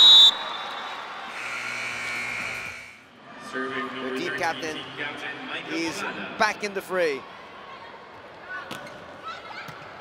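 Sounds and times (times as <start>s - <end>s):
arena buzzer: 1.3s - 3.0s
crowd noise: 2.3s - 10.0s.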